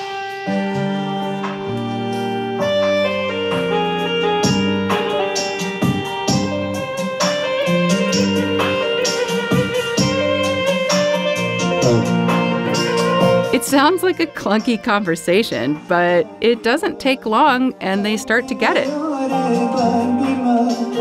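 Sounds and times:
electric saz plucked notes: 0.0 - 21.0
fretless bass: 5.8 - 18.9
keyboard held tones: 11.6 - 18.9.

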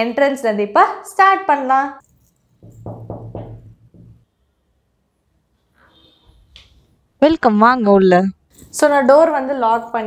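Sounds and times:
knuckles knocking on wooden door: 2.6 - 4.2.

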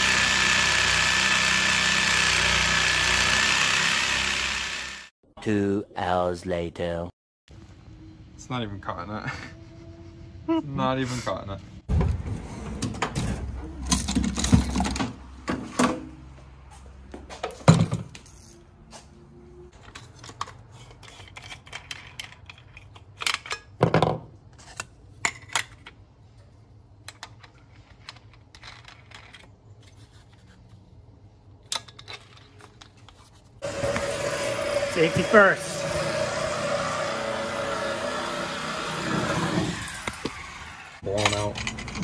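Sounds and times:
loud humming noise: 0.0 - 5.1, 33.6 - 41.0
metal tools clinking in drawer: 41.1 - 42.0.

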